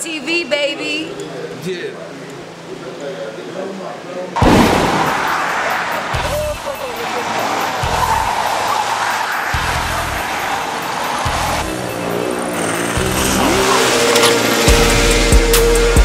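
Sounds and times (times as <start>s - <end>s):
tyres squealing on asphalt: 4.8s - 16.0s
music with heavy bass beat: 11.2s - 16.0s.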